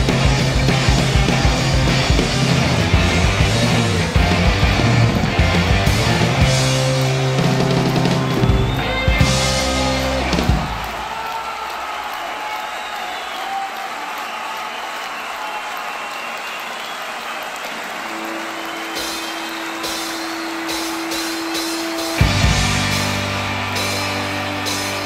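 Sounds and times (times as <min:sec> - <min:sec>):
rock band with drums playing: 0:00.0 - 0:11.8, 0:18.0 - 0:25.0.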